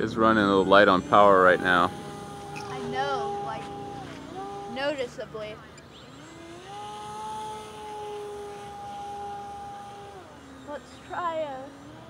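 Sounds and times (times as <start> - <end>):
model plane electric motor whine: 0.0 - 12.0.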